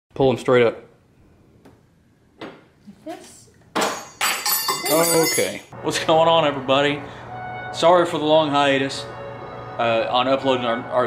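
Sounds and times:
loud ringing metallic clink: 3.8s - 5.7s.

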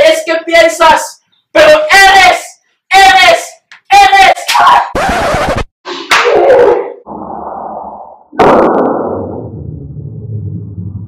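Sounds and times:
slap across the face: 6.1s - 6.4s.

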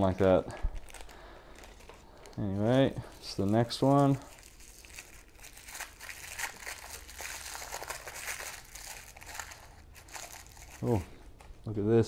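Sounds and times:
plastic wrapping crinkling: 0.0s - 11.6s.

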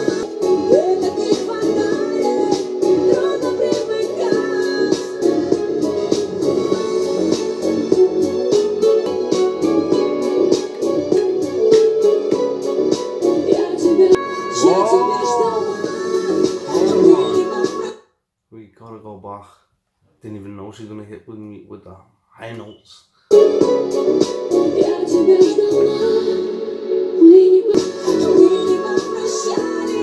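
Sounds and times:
woman singing: 0.0s - 5.6s, 13.2s - 18.0s, 24.5s - 30.0s
electronic beat: 0.0s - 17.9s, 27.7s - 30.0s
synth keyboards: 0.0s - 17.9s, 23.3s - 30.0s.

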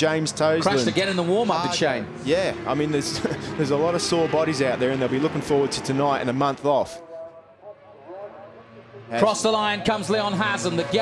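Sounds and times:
faint racing motorcycle engines: 0.0s - 11.0s.

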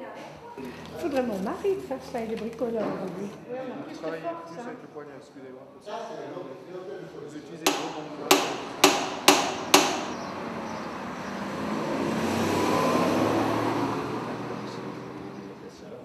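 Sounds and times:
hammer blows on metal: 7.7s - 10.3s.

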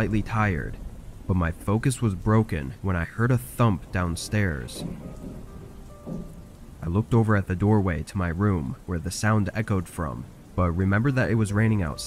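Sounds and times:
low rumble of thunder: 0.0s - 7.2s
steady rain falling: 0.0s - 12.0s.

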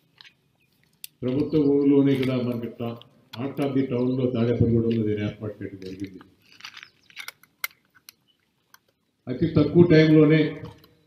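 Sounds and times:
man speaking into a microphone: 1.2s - 6.2s, 9.3s - 10.8s.

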